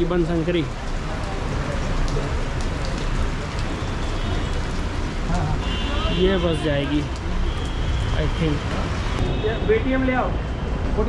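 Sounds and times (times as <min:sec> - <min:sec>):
heavy rain falling: 0:00.0 - 0:11.0.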